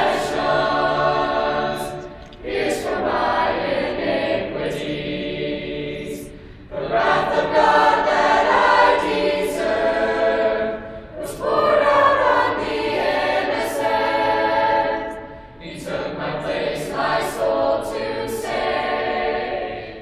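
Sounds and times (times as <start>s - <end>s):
youth chorus singing a cappella: 0.0s - 20.0s.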